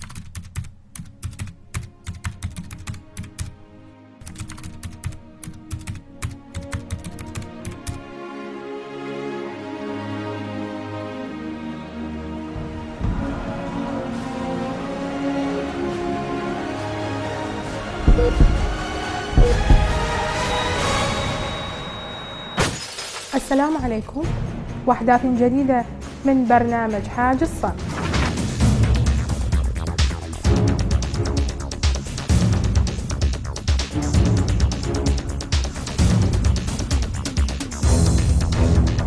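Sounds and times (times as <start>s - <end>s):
low music bed: 5.1s - 21.8s
title music: 17.1s - 21.8s
heart monitor beep: 18.1s - 18.8s, 19.4s - 20.0s
heartbeat thumps: 18.1s - 20.2s.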